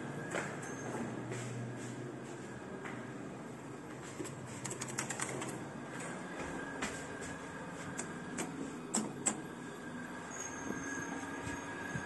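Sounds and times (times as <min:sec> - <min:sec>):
elevator machinery hum: 0:00.0 - 0:12.0
thin high whine: 0:06.3 - 0:12.0.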